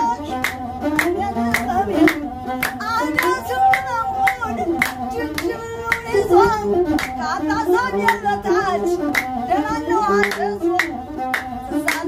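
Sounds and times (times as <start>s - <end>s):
bowed one-string fiddle: 0.0s - 12.0s
woman singing: 0.0s - 12.0s
hand claps: 0.3s - 6.3s, 6.9s - 7.3s, 8.0s - 8.3s, 9.0s - 9.4s, 10.0s - 12.0s.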